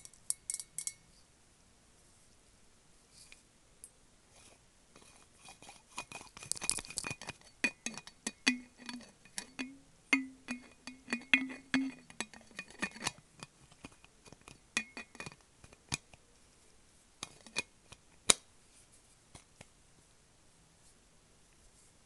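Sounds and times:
fingernails tapping metal bottle: 5.0s - 16.0s.

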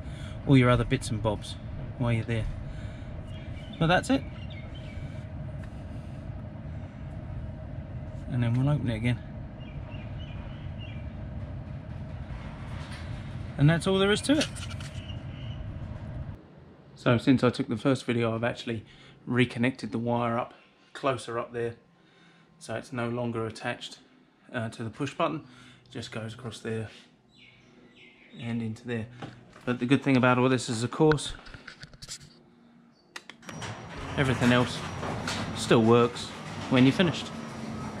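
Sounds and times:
roller garage door opener rumbling: 0.0s - 16.8s, 33.4s - 38.0s
garage door opener motor: 33.4s - 38.0s.

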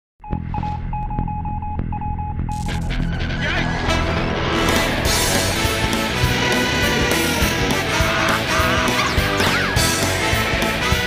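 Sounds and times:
high electronic beep: 0.2s - 3.5s
low throbbing hum: 0.3s - 9.4s
rushing blast-off noise: 2.8s - 11.0s.

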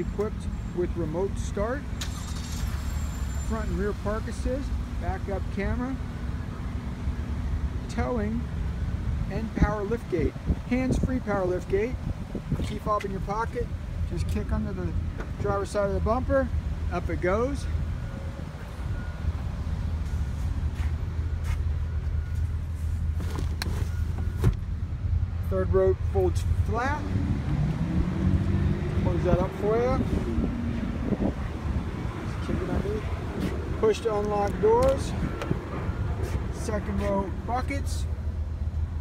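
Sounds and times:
road traffic rumble: 0.0s - 39.0s.

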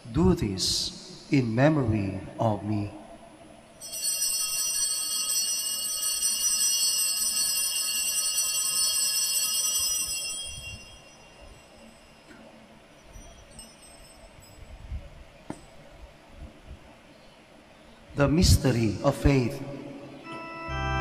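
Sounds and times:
altar bells ringing: 3.8s - 15.2s, 20.2s - 21.0s.

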